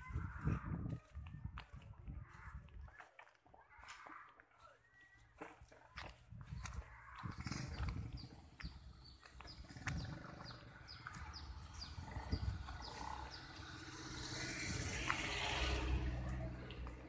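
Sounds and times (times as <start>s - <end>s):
wind rumble on microphone: 0.0s - 2.9s, 6.2s - 15.2s
minivan driving past: 9.6s - 17.0s.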